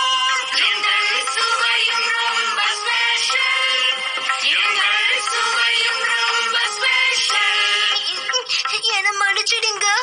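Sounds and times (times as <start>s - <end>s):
singing over music: 0.0s - 9.0s.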